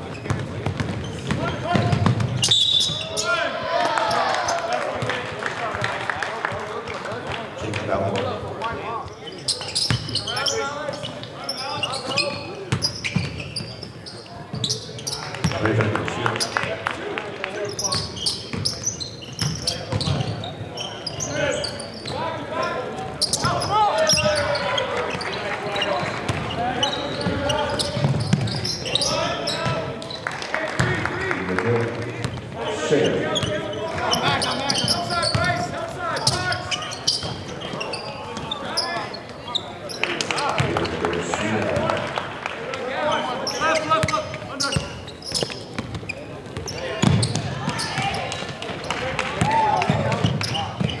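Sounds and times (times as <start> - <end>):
voices calling and shouting: 32.5 - 51.0
basketball bouncing on hardwood: 46.6 - 47.5.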